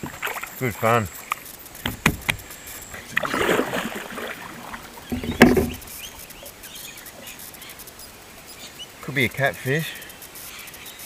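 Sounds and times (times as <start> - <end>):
kayak paddle splashing: 0.0 - 7.3
faint water lapping: 0.0 - 8.4
paddle knock: 1.8 - 2.5, 3.2 - 6.1.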